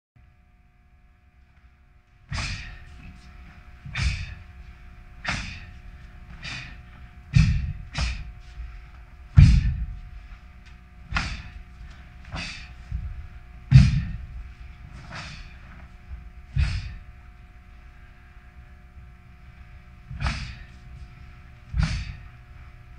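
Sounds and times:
faint steady hum: 0:00.2 - 0:22.9
feet thudding on floor: 0:09.3 - 0:10.4, 0:11.1 - 0:17.0.

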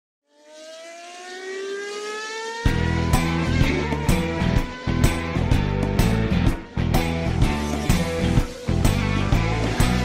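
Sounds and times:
racing car engine accelerating: 0:00.3 - 0:10.0.

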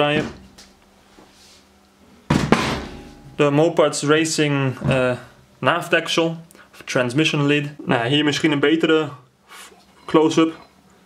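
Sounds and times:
sharp knock: 0:02.3 - 0:03.4.

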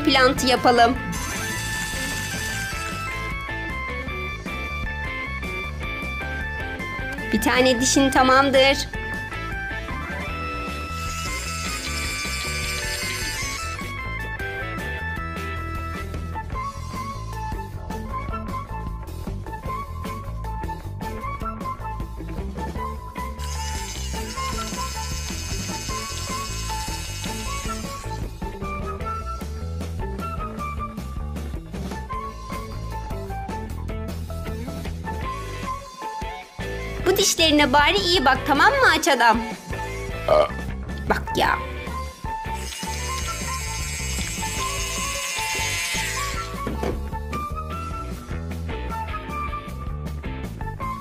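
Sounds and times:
background music with bass: 0:00.0 - 0:51.0
toy dentist drill whirring: 0:00.2 - 0:07.2, 0:09.8 - 0:14.4, 0:23.1 - 0:29.7, 0:32.2 - 0:33.2, 0:35.3 - 0:40.3, 0:41.9 - 0:46.8.

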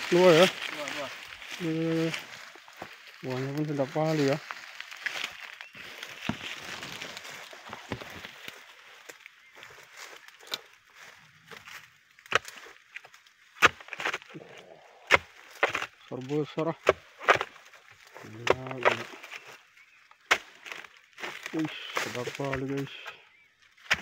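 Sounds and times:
blade chopping palm stalks: 0:11.6 - 0:14.4, 0:15.1 - 0:19.6, 0:20.2 - 0:23.2, 0:23.8 - 0:24.0.

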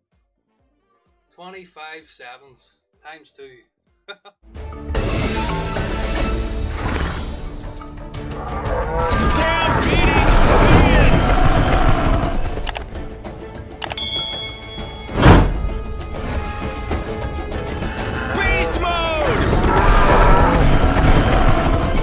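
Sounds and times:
slot game music: 0:04.6 - 0:08.1, 0:12.6 - 0:19.6
animal-like calls: 0:08.2 - 0:12.6, 0:19.2 - 0:22.0
short chime: 0:13.9 - 0:15.5.

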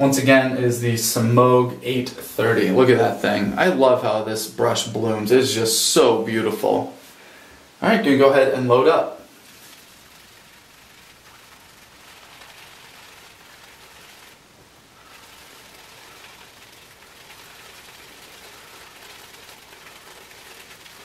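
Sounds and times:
shaving brush swirling on soap: 0:09.3 - 0:14.4, 0:15.0 - 0:21.0.

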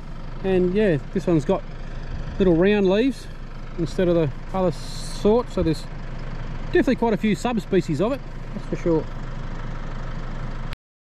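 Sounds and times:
outdoor background hum: 0:00.0 - 0:10.8.

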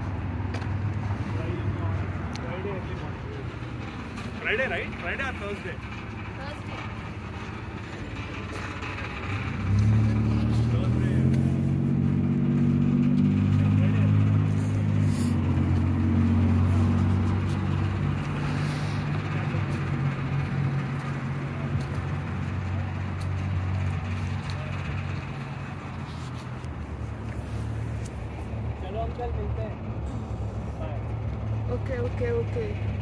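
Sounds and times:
engine humming: 0:00.0 - 0:33.0.

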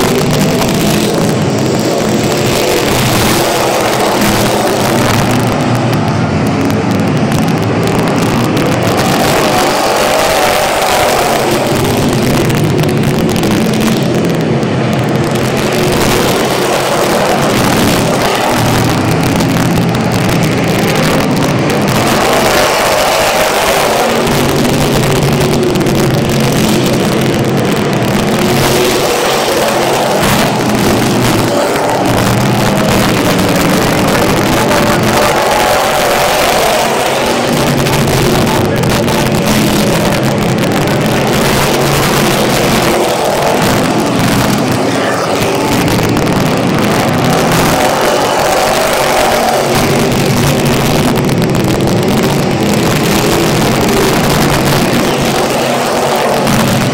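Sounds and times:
race car engines passing: 0:00.0 - 0:56.9.

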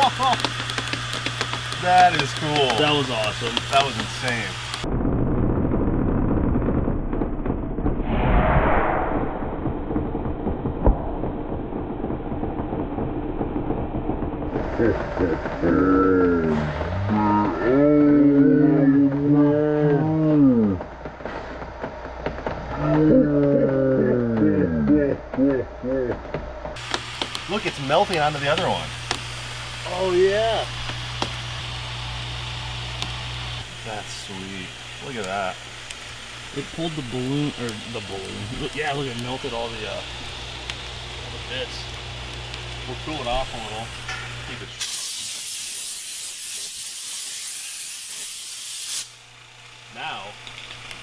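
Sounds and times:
slow-motion calls or laughter: 0:00.0 - 0:00.6, 0:14.4 - 0:20.8, 0:22.7 - 0:26.3
slowed-down voices moaning: 0:14.5 - 0:21.0, 0:22.7 - 0:26.4
high-pitched air hiss: 0:26.8 - 0:40.6, 0:42.8 - 0:49.3.

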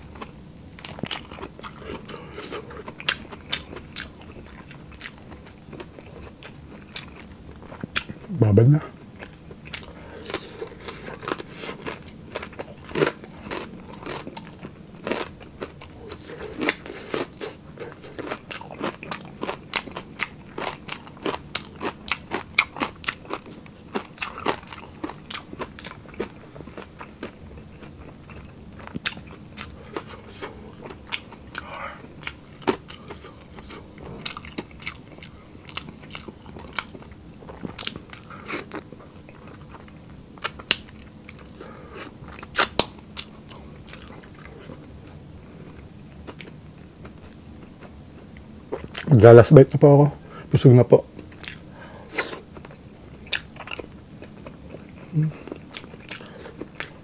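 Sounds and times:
crunching and chewing: 0:00.0 - 0:08.3, 0:08.9 - 0:49.8, 0:51.0 - 0:57.0.

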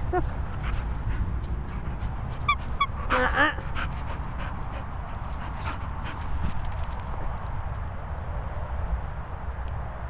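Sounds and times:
dog panting: 0:00.0 - 0:06.9
steady low rumble: 0:00.0 - 0:08.2.

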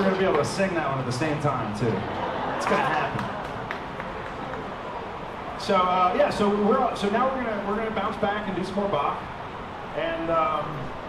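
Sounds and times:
man talking: 0:00.0 - 0:03.3, 0:05.6 - 0:09.2, 0:09.9 - 0:10.9.

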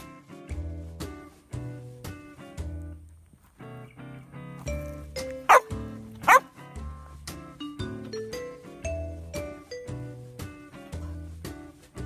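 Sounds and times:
dog barking: 0:05.5 - 0:06.4.

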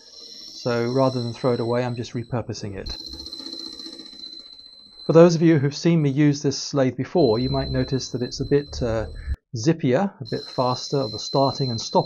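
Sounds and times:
metal lathe hum and whine: 0:00.0 - 0:02.0.

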